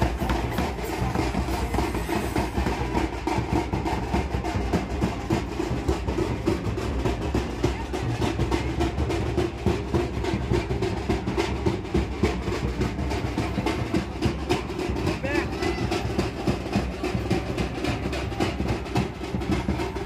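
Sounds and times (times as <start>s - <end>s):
drums playing fast beat: 0.0s - 20.0s.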